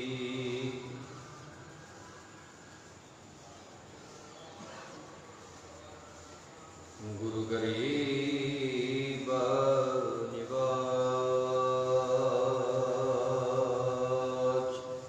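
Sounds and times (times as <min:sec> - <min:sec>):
man chanting into a microphone: 0:07.0 - 0:15.0.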